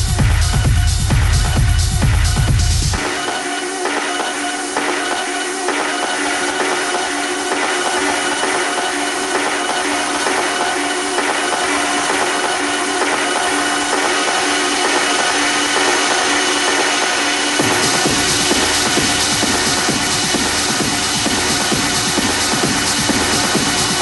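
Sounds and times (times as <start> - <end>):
techno music: 0.0 - 24.0.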